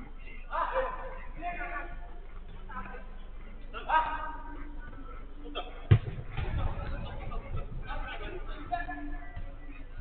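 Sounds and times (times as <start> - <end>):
football kicked thud: 5.9 - 7.0.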